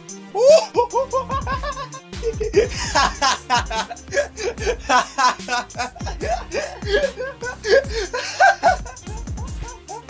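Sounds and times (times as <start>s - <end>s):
man laughing high-pitched: 0.4s - 10.0s.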